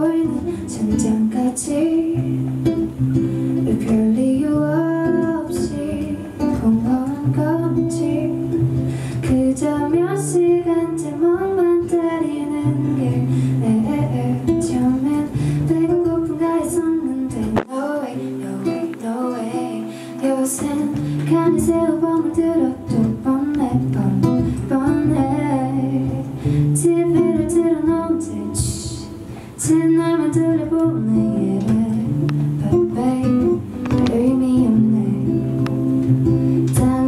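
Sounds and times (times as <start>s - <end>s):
guitar accompaniment: 0.0s - 37.0s
woman singing slow melody: 0.0s - 37.0s.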